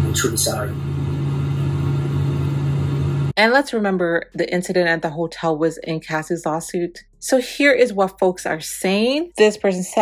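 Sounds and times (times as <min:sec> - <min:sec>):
low rumble with hum: 0:00.0 - 0:07.4.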